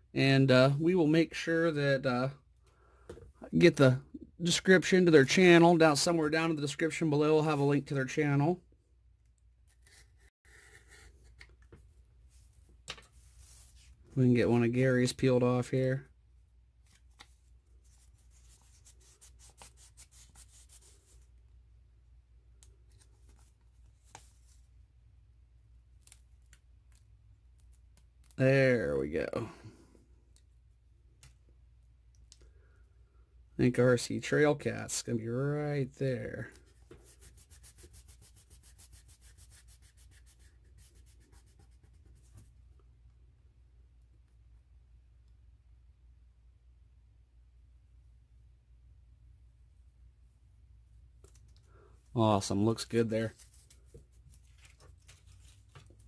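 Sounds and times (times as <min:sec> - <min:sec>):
sticker paper crinkling: 0:53.2 - 0:56.0.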